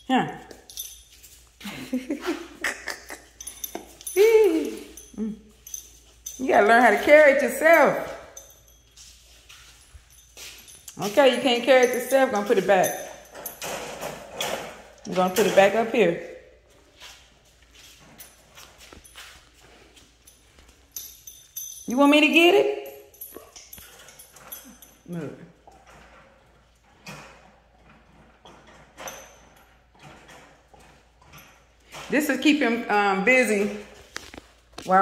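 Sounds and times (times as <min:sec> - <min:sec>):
light metallic rattles: 0:00.0 - 0:35.0
rustling and scuffing movement: 0:05.8 - 0:12.8, 0:16.6 - 0:21.8.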